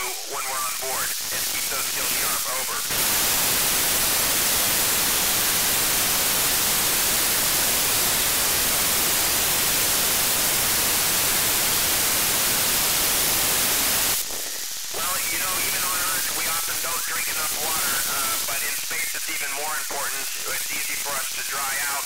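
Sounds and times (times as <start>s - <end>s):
radio static hiss: 0.0s - 22.0s.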